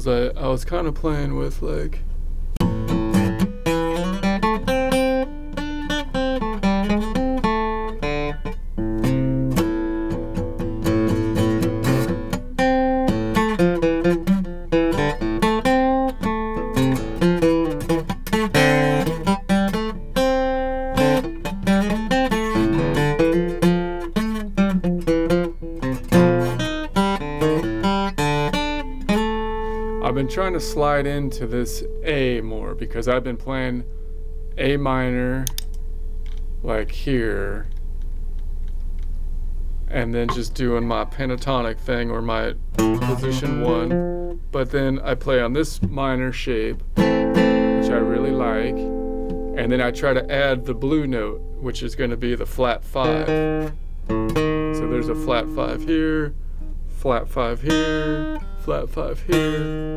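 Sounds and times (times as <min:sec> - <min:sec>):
acoustic guitar playing: 0:02.5 - 0:37.6, 0:39.9 - 0:59.9.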